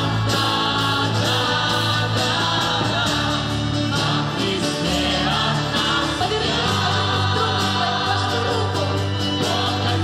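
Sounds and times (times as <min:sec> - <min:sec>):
band accompaniment: 0:00.0 - 0:10.0
choir singing worship song: 0:00.0 - 0:10.0.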